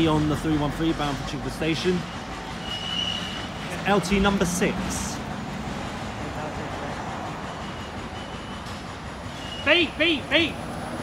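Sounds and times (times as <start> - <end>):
cars passing: 0.0 - 11.0.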